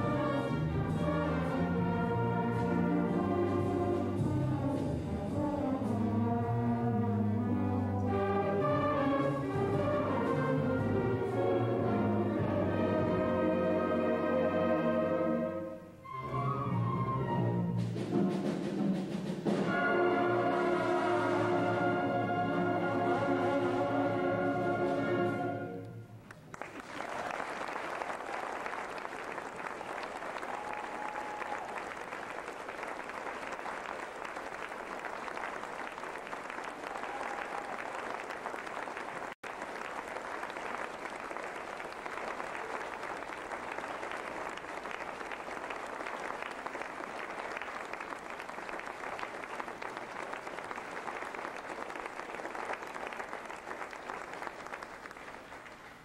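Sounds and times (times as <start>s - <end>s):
audience applauding: 26.2s - 56.0s.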